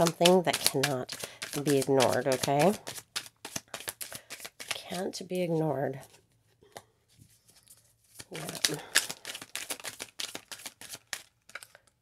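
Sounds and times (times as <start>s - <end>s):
cards being shuffled: 0.0s - 5.0s, 7.3s - 12.0s.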